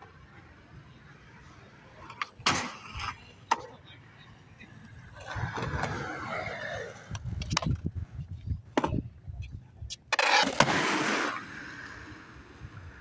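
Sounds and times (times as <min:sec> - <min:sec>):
skateboard rolling on concrete: 0:00.0 - 0:13.0.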